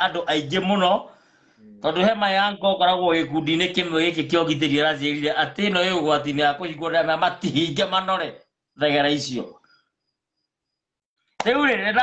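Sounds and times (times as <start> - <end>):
man speaking: 0.0 - 9.6.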